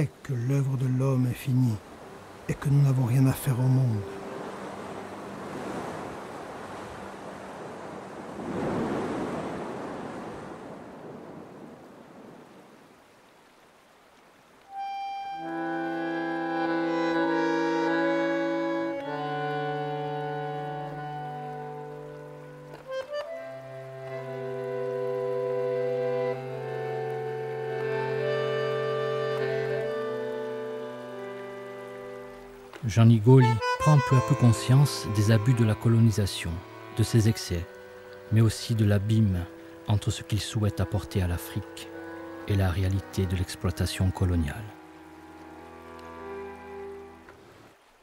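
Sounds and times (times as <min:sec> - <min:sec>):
bandoneon sustained chord: 0:00.4 - 0:07.5, 0:14.7 - 0:47.5
waves breaking over rocks: 0:01.4 - 0:13.8.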